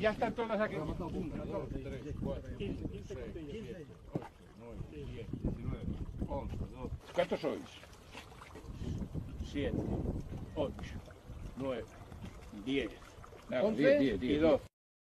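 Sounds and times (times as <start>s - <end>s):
wind rumble on microphone: 0.0s - 7.4s, 8.2s - 13.0s
men talking indistinctly: 0.0s - 14.7s.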